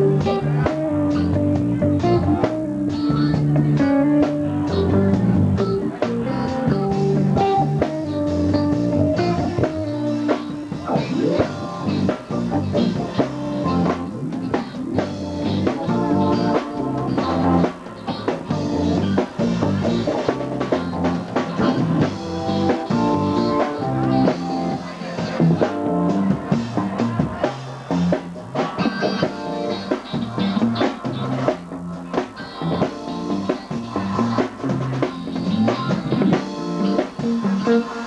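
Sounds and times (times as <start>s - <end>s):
bass guitar: 0.0s - 38.0s
drum kit beat: 0.0s - 38.0s
electric guitar: 0.0s - 38.0s.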